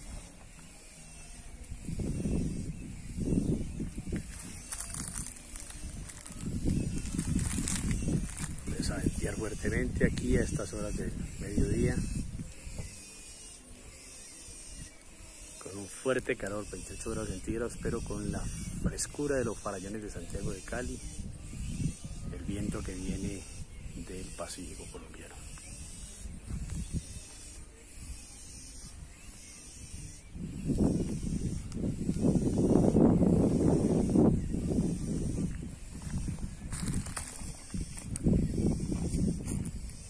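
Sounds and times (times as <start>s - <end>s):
wind buffeting microphone: 1.4s - 13.0s, 16.7s - 40.0s.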